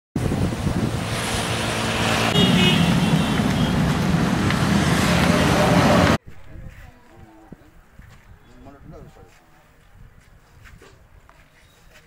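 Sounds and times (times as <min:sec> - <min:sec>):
road traffic noise: 0:00.2 - 0:06.2
vehicle engine running: 0:00.3 - 0:06.2.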